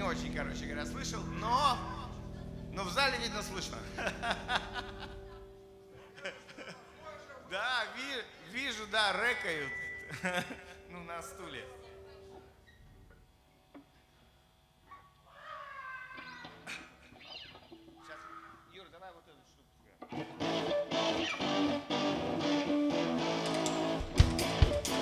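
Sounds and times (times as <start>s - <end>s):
bass guitar: 0.0s - 5.7s, 20.1s - 25.0s
electric guitar: 16.0s - 18.5s, 20.0s - 25.0s
drum kit kick drum hits: 23.9s - 25.0s.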